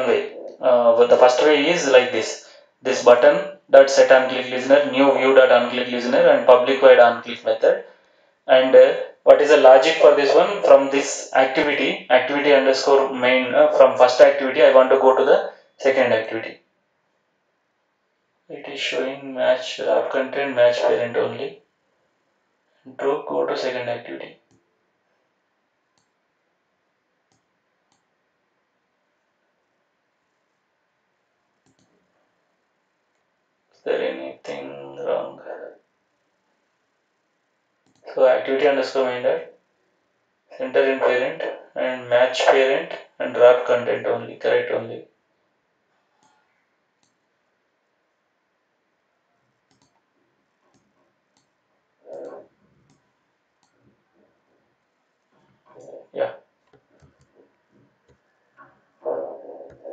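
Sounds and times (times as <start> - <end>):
computer mouse clicks: 25.9 - 26.2, 27.3 - 28.1, 31.6 - 32.1, 37.8 - 38.0, 46.1 - 47.2, 49.4 - 50.1, 50.7 - 51.6, 56.6 - 58.7.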